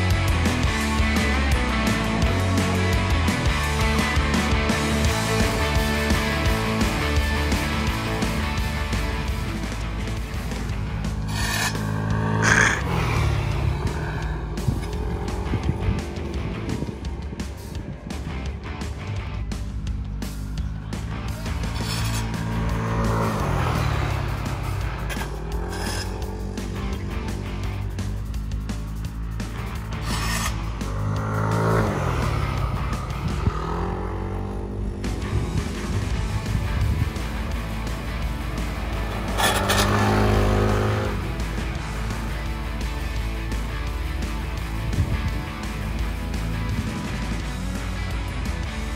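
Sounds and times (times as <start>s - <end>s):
background music: 0.0s - 48.9s
scooter engines revving: 0.0s - 48.9s.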